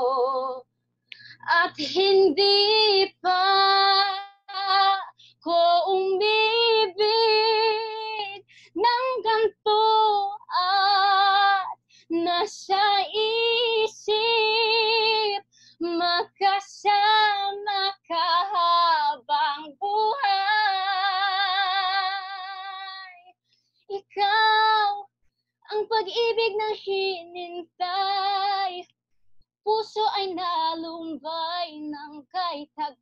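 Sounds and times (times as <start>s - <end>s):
woman singing unaccompanied: 0.0s - 0.6s, 1.4s - 23.3s, 23.9s - 28.9s, 29.7s - 33.0s.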